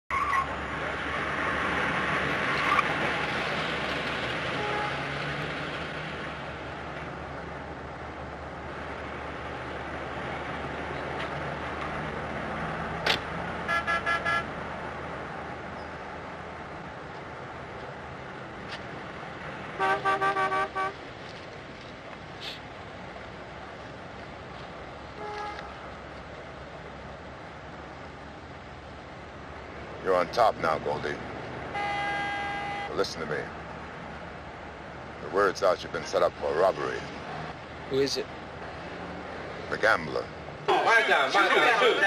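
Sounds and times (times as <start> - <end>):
street traffic hiss: 0.2 - 42.0
car horn short toots: 13.7 - 14.5, 19.8 - 21.0, 25.2 - 25.7, 31.8 - 32.9.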